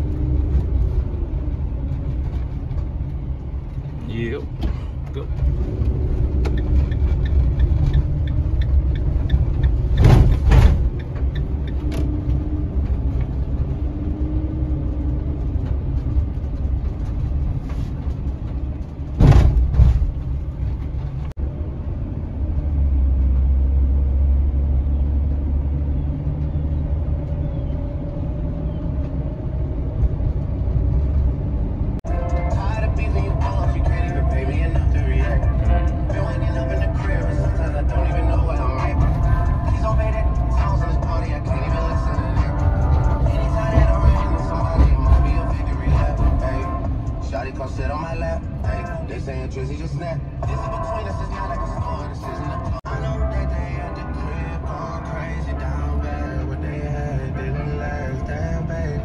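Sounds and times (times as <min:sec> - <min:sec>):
engine and road rumble: 0:00.0 - 0:59.0
loud knocks: 0:09.8 - 0:11.0, 0:19.1 - 0:20.4
music: 0:32.1 - 0:59.0.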